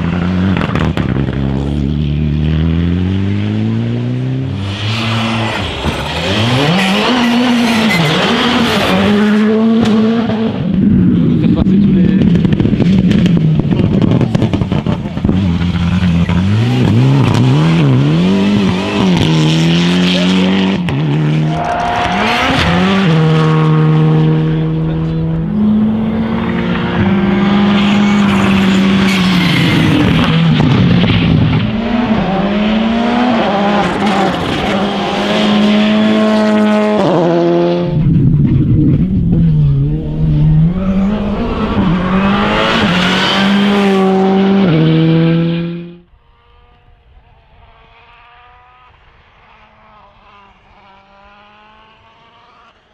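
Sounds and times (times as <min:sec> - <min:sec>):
cars passing: 0:00.0 - 0:52.9
rally car engines revving: 0:00.0 - 0:52.9.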